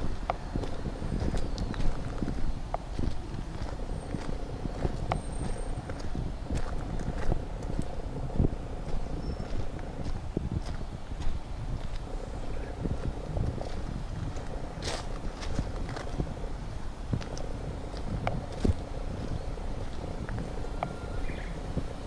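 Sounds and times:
gravel crunching under tyres: 0.0 - 22.0.

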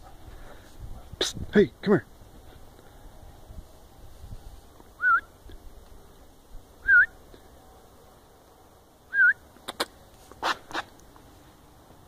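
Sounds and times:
person whistling: 5.0 - 5.3, 6.9 - 7.1, 9.1 - 9.4
sharp clicks: 9.6 - 10.0.

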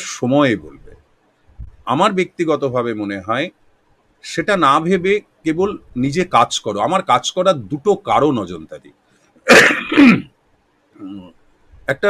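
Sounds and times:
man clearing throat: 9.4 - 10.3.

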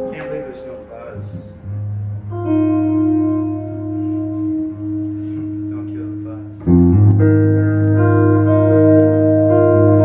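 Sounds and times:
electric guitar chords: 0.0 - 10.0
steady amplified drone: 0.0 - 10.0.

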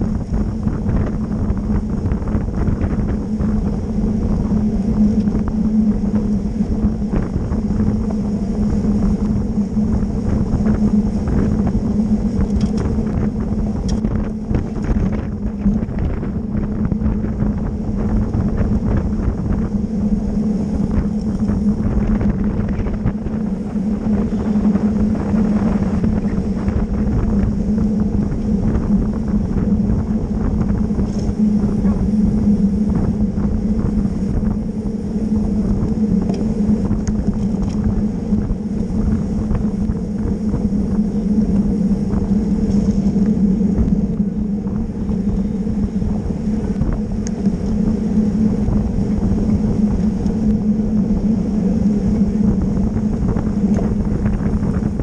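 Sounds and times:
steady low hum: 0.0 - 55.0
wind rushing over microphone: 0.0 - 55.0.

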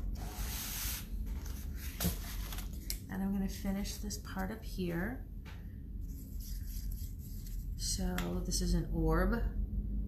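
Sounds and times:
paper scraping across tabletop: 0.1 - 2.7.

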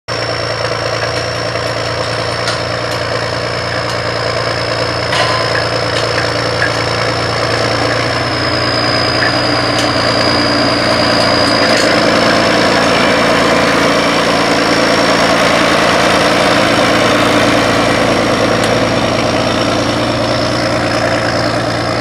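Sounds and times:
high whine: 0.1 - 22.0
tractor diesel engine under load: 0.1 - 22.0.

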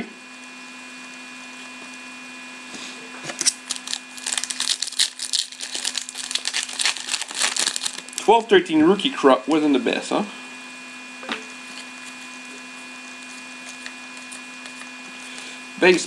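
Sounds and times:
faint steady hum: 0.0 - 16.0
foil wrapper tearing and crinkling: 3.4 - 8.5, 13.2 - 15.4.

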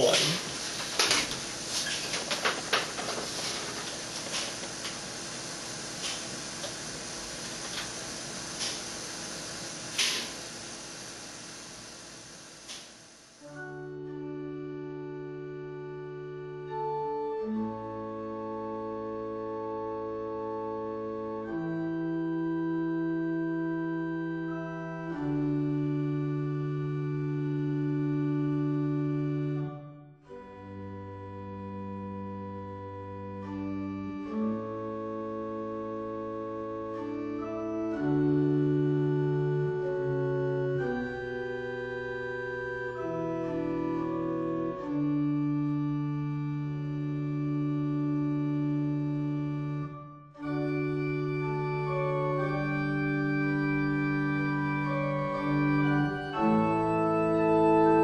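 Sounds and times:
steady hiss: 0.0 - 13.6
organ playing sustained chords: 0.0 - 58.0.

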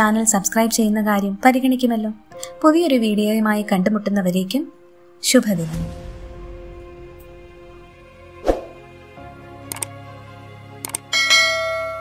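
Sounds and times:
soft background music: 0.0 - 12.0
mouse clicks: 9.7 - 9.9, 10.8 - 11.0
bell chime: 11.1 - 12.0.

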